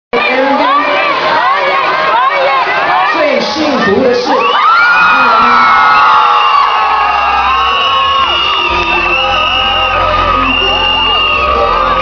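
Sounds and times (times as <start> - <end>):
audience screaming and cheering: 0.2 - 12.0.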